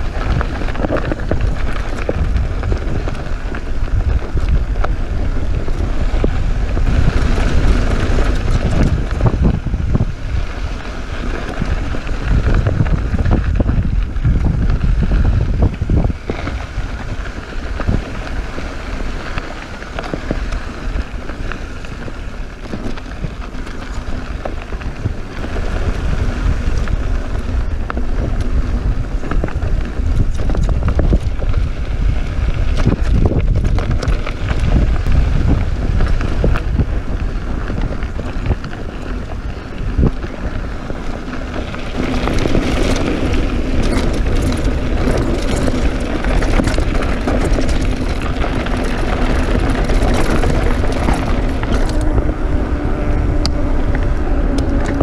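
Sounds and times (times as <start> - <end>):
bike rattling: 0.0 - 55.0
tyres crunching over gravel: 0.0 - 55.0
wind buffeting microphone: 0.0 - 55.0.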